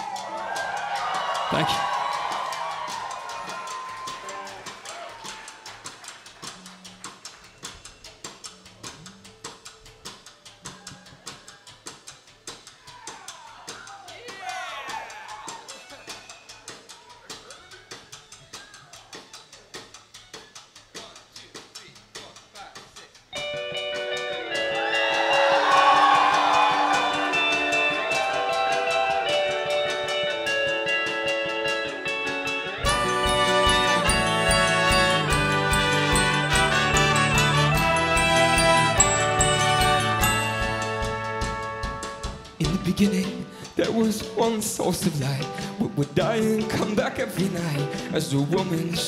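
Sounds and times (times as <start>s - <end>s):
quick ticking percussion beat: 0.0s - 49.0s
rock band playing live: 23.4s - 43.4s.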